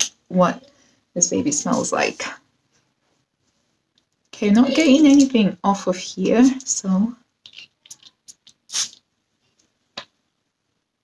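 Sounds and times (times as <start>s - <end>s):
perfume atomizer spraying: 8.3s - 9.0s.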